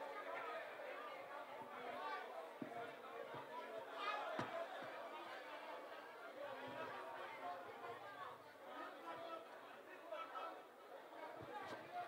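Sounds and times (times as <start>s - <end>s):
faint chatter of people: 0.0s - 12.0s.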